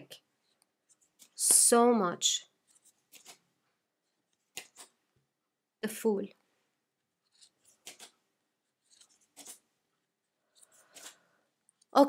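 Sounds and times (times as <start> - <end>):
cards swishing through deck: 2.7 - 3.4, 7.3 - 8.2, 8.9 - 9.6.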